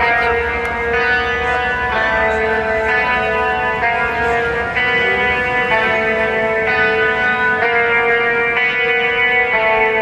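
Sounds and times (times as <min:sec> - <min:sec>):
metal band playing live: 0:00.0 - 0:10.0
ringing guitar chords: 0:00.0 - 0:10.0.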